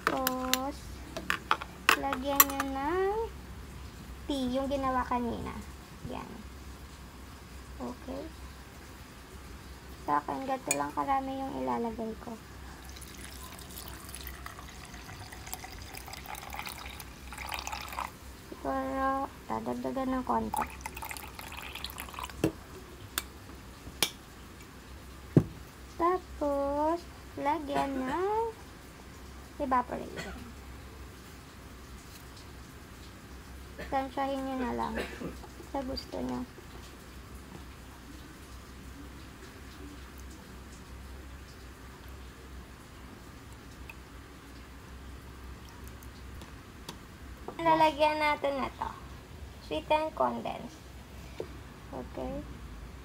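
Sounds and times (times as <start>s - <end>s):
tea pouring into plastic cup: 12.8s - 18.2s, 20.5s - 22.5s.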